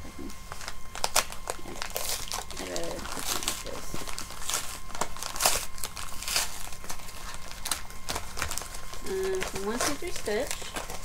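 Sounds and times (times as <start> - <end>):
padded envelope crinkling: 0.5 - 11.0.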